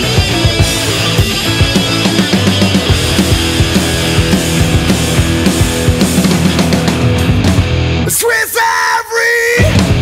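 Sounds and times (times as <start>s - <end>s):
heavy rock music: 0.0s - 10.0s
person yelling vocal phrase: 8.1s - 9.8s.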